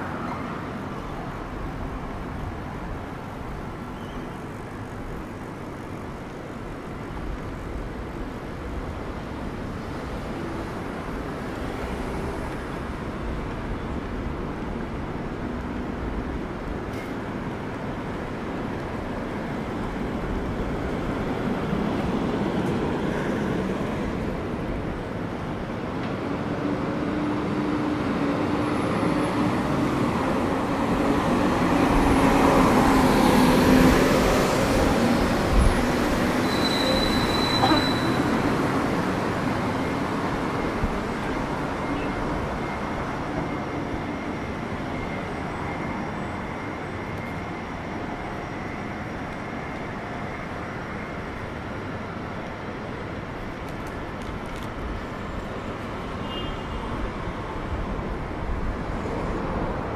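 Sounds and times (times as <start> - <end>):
city street traffic: 0.0 - 59.9.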